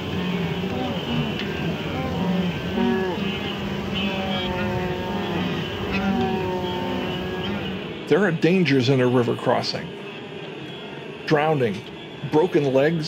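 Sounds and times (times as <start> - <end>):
wildebeest grunting calls: 0.0 - 7.9
rumble of moving herd: 0.0 - 9.4.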